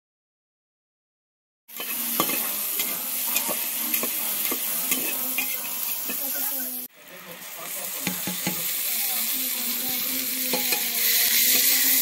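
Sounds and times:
metal spatula scraping pan: 1.7 - 6.7
food sizzling in hot oil: 1.7 - 12.0.

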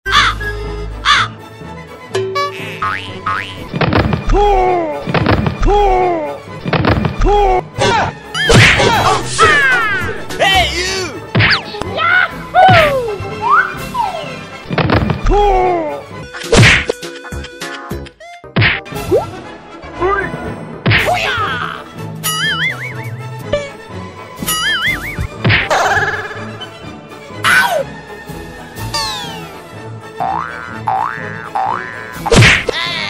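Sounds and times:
slapstick whack sound effects: 8.4 - 9.1, 16.4 - 17.0, 18.6 - 19.3, 20.8 - 21.2, 25.2 - 26.0, 32.2 - 32.8.

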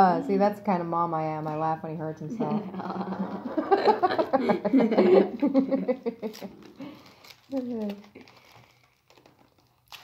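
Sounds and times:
packing tape crinkling: 6.1 - 10.0.

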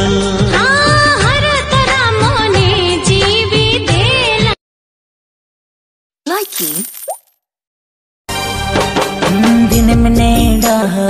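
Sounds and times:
music: 0.0 - 4.6, 8.3 - 11.0
voice tag: 6.3 - 6.9.

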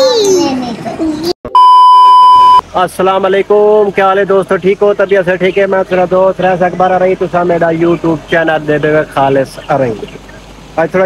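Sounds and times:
steady beep: 1.5 - 2.6.

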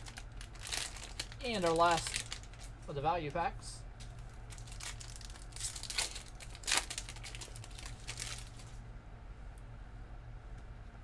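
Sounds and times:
wrapper crinkling and tearing: 0.0 - 2.8, 4.2 - 8.8.

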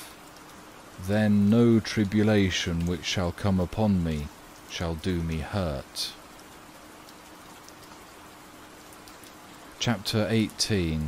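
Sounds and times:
faint steady hum: 0.0 - 11.0
steady rain: 0.0 - 11.0.

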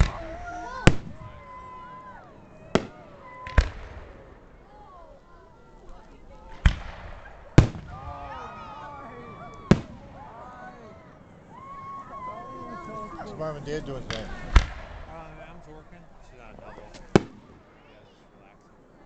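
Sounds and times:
fireworks bursting with sharp bangs: 0.0 - 4.7, 6.0 - 8.6, 9.5 - 10.3, 13.9 - 18.0.

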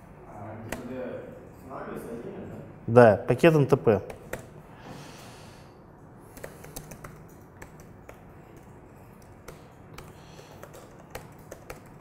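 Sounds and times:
laptop keyboard keystrokes: 4.0 - 4.6, 6.3 - 12.0.

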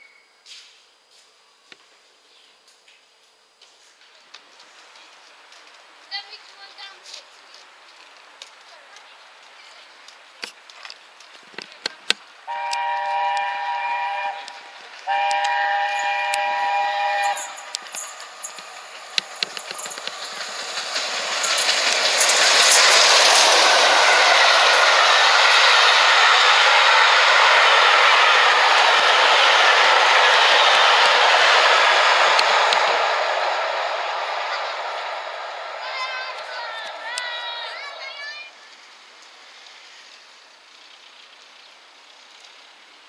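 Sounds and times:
train passing rush: 3.4 - 43.0
steam locomotive chime whistle: 12.5 - 18.0
wheel clatter: 17.3 - 25.6.

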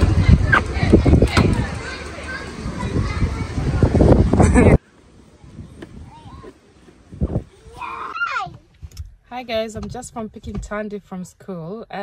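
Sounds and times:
children's voices: 0.0 - 8.8.

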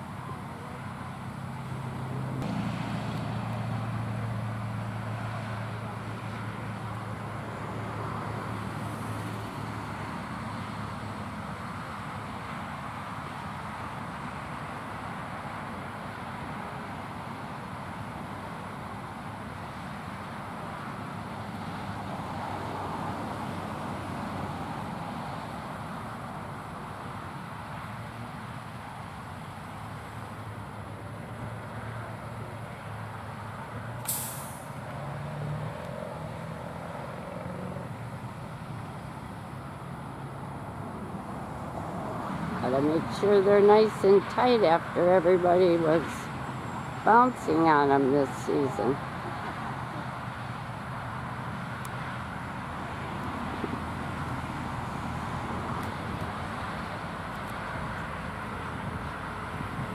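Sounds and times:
truck engine humming: 0.0 - 59.9
short sharp hiss: 34.0 - 34.8.

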